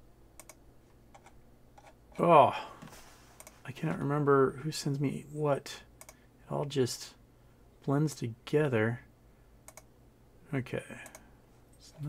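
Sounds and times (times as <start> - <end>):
faint computer keyboard clicking: 0.4 - 1.9, 6.0 - 6.2, 9.6 - 9.9, 10.9 - 11.3.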